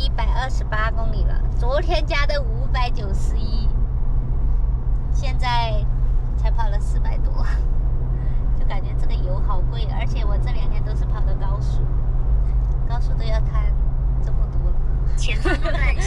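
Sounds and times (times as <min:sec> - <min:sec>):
woman talking: 0:00.0 - 0:03.7, 0:05.2 - 0:07.6, 0:08.6 - 0:11.8, 0:12.9 - 0:16.0
car cabin road noise: 0:00.0 - 0:16.0.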